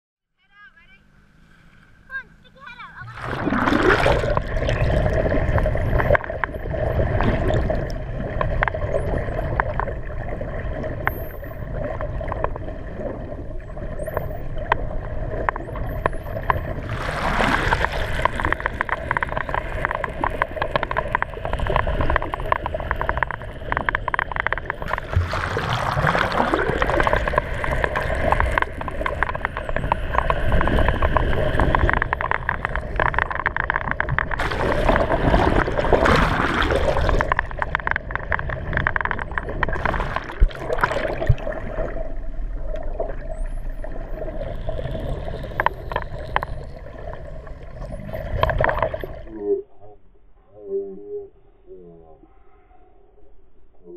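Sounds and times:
steady underwater hum: 0.4s - 53.9s
rapid dolphin clicking: 15.5s - 40.6s.

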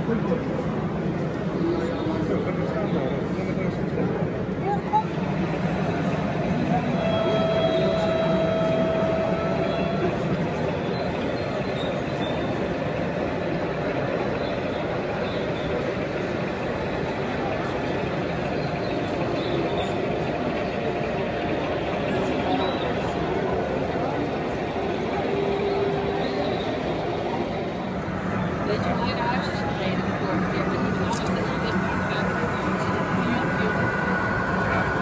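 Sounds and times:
crowd babble: 0.0s - 35.0s
model locomotive running: 0.0s - 35.0s
steady whining tone: 0.0s - 35.0s.

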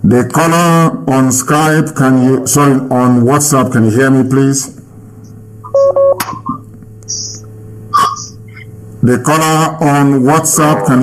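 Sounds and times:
steady low hum: 0.0s - 11.0s
electronic phone beep: 5.7s - 7.4s
sharp click: 6.2s - 7.5s.

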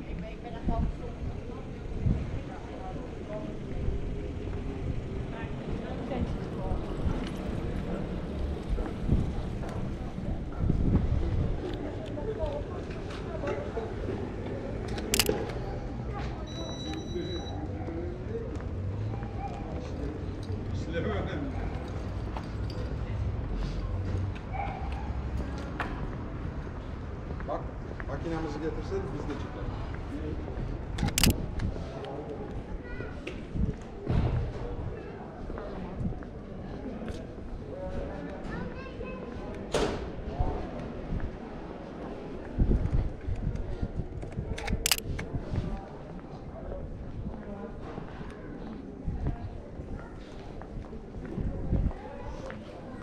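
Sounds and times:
passers-by talking: 0.0s - 53.0s
camera shutter click: 15.1s - 15.4s, 31.0s - 31.4s, 44.6s - 45.1s
brief high beep: 16.5s - 17.6s.

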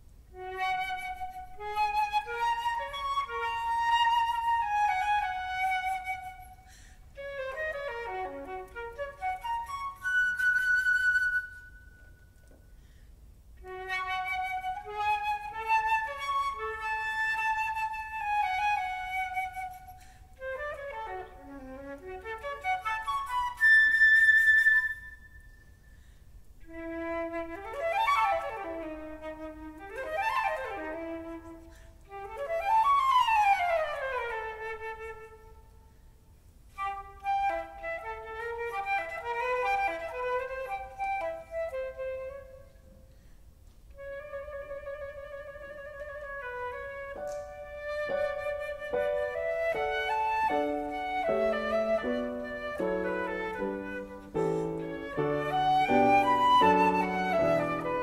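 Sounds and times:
flute playing classical solo: 0.0s - 12.8s, 13.6s - 36.1s, 36.7s - 43.3s, 43.9s - 58.0s.

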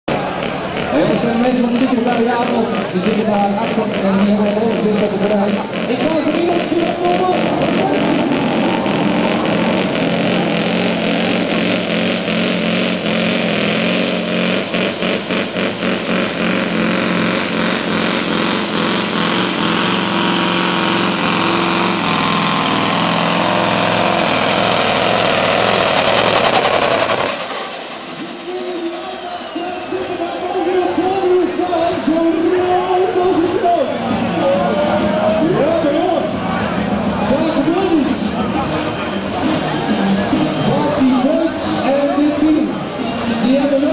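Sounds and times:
truck engine running hard: 0.0s - 43.9s
high mechanical whine: 3.5s - 31.7s.

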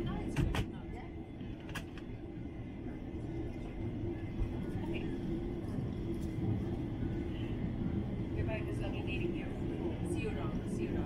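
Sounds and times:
airliner cabin rumble: 0.0s - 11.0s
faint passenger voices: 0.0s - 11.0s.

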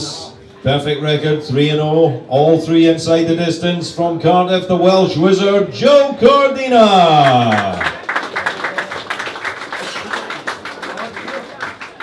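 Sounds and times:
small crowd clapping: 7.0s - 12.0s.

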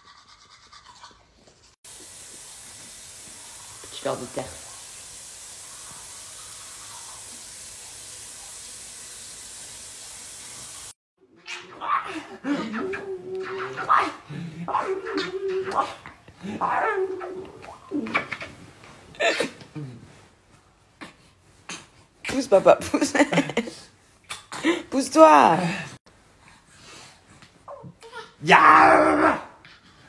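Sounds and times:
steady hiss: 1.9s - 11.0s.

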